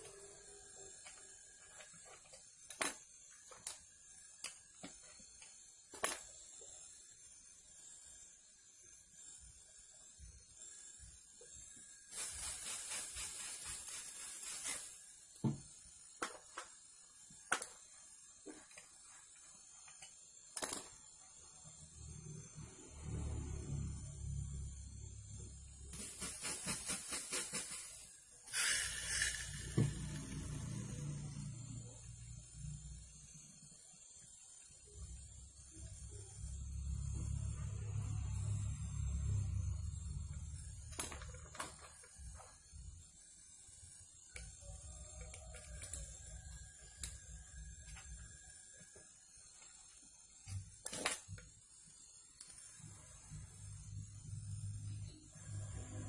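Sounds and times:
spray bottle spritzing: 0.1s - 7.0s, 8.9s - 21.2s, 25.5s - 31.4s.

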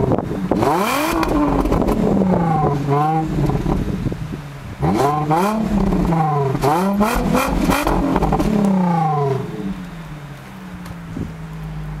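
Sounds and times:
car engine idling with blip: 0.0s - 12.0s.

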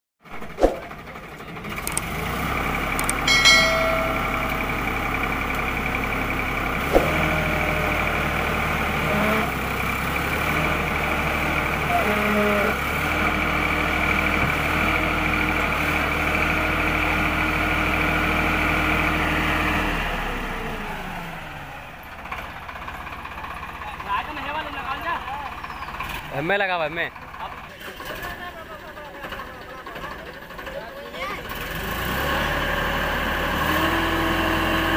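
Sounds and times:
tractor diesel engine revving: 0.9s - 3.3s, 4.4s - 28.5s, 31.4s - 34.9s.

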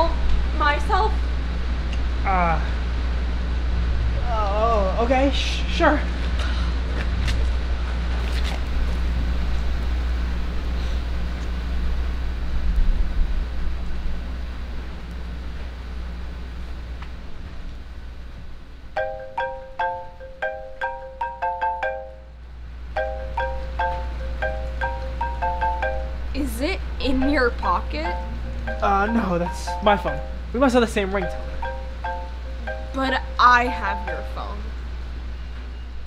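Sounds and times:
low outdoor rumble: 0.0s - 36.0s
phone ringtone marimba melody: 19.0s - 34.7s.

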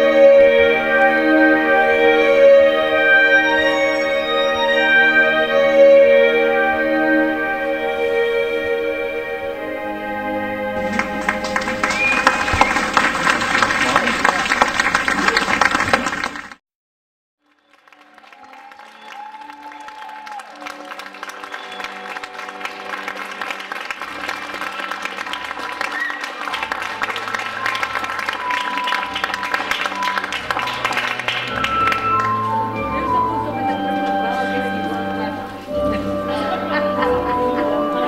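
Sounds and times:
music: 0.0s - 15.8s, 17.4s - 38.0s
ballet music: 0.0s - 16.0s, 17.5s - 38.0s
audience applauding: 10.8s - 16.6s, 17.5s - 33.5s.

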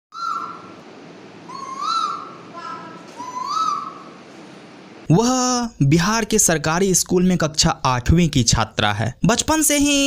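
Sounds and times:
girl imitating bird call: 1.5s - 4.2s.

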